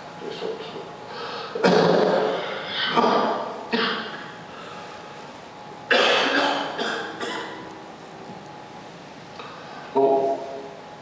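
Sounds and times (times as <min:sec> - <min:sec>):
man coughing into microphone: 0:01.6 - 0:04.1, 0:05.9 - 0:07.6.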